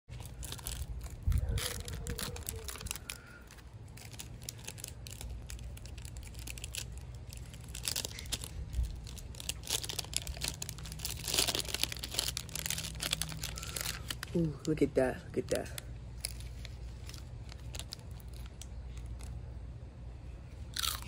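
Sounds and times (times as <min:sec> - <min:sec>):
foil pouch tearing and crinkling: 0:00.1 - 0:14.8, 0:15.4 - 0:19.3.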